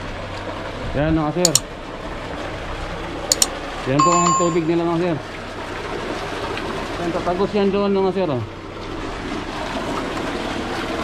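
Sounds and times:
sharp clicks: 3.3 - 3.5
water pouring into concrete channel: 5.1 - 11.0.

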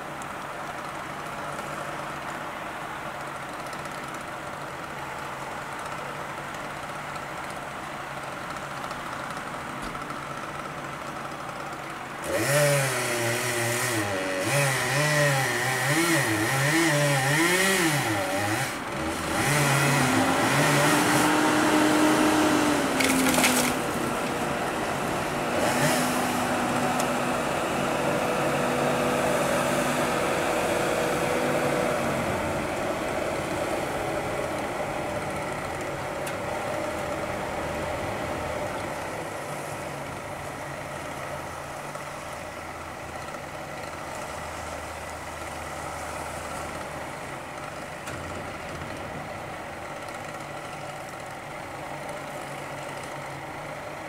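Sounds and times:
chainsaw cutting tree trunk: 8.2 - 39.8.

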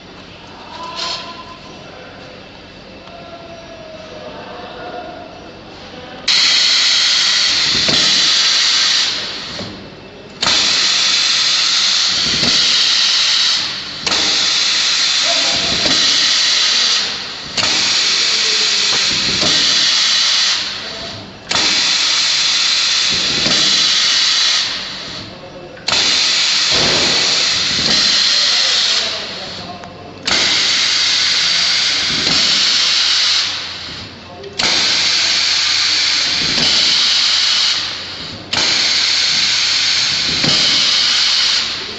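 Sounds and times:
compressed air hissing: 6.3 - 41.9.

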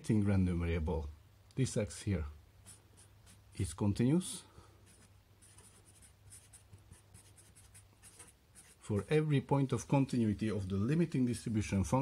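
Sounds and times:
marker scratching while writing: 2.6 - 3.6, 4.8 - 9.2.

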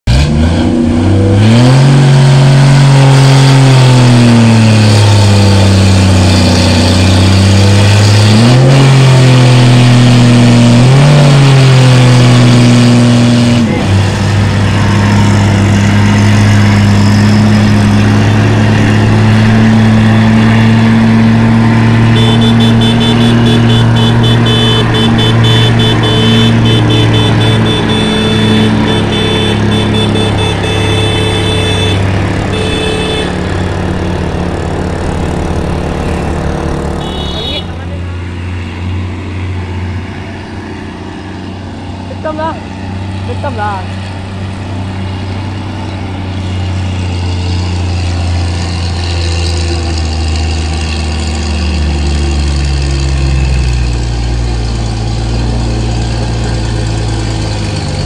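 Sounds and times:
truck diesel engine labouring: 0.0 - 58.0.

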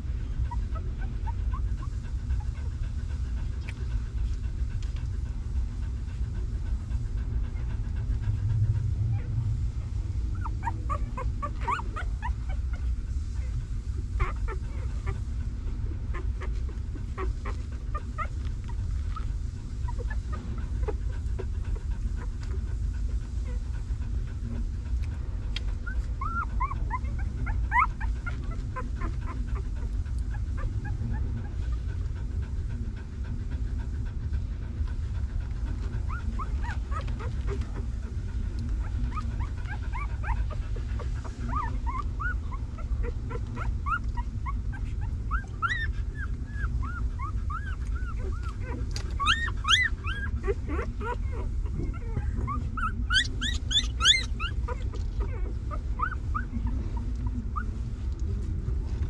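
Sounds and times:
low rumble: 0.0 - 59.0
puppies squeaking and whimpering: 0.3 - 2.9, 10.3 - 13.5, 14.1 - 15.3, 16.0 - 22.4, 25.9 - 31.9, 35.8 - 57.7.

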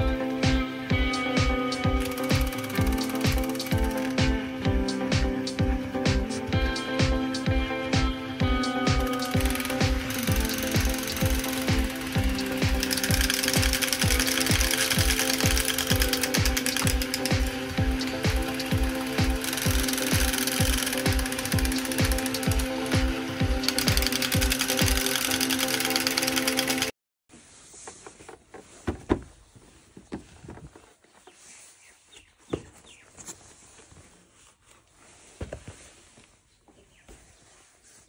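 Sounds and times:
tinny electronic toy music: 0.0 - 5.4, 8.4 - 26.9
toy motors whirring and clicking: 1.7 - 4.3, 8.6 - 26.9.

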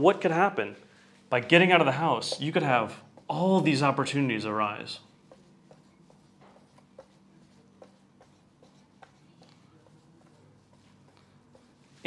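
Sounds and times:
marker strokes on whiteboard: 0.0 - 12.0.

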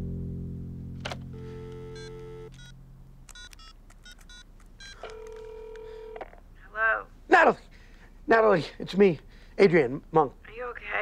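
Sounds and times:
telephone ringing tone: 1.3 - 2.8, 3.4 - 6.3
telephone keypad beeps: 1.6 - 6.2.

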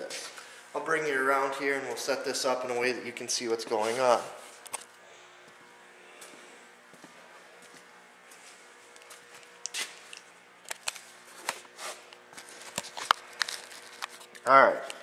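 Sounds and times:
faint steady hum: 0.0 - 15.0
footsteps: 3.6 - 10.3.

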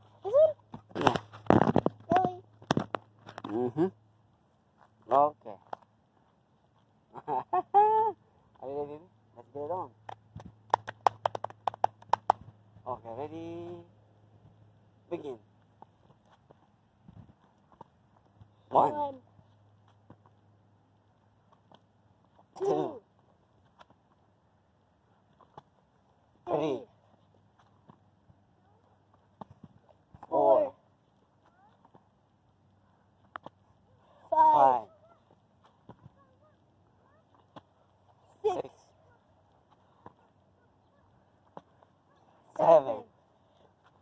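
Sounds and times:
hands and shoes tapping ground: 0.0 - 7.3, 9.7 - 12.6, 15.2 - 44.0
people clapping hands: 10.0 - 12.4.

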